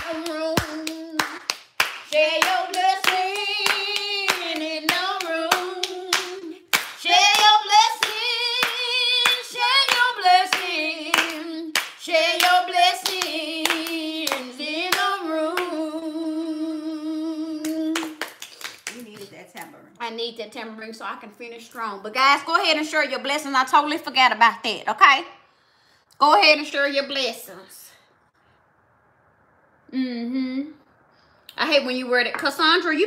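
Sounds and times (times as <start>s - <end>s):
hand claps: 0.0s - 15.7s, 17.6s - 19.3s
woman singing with vibrato: 0.0s - 18.3s.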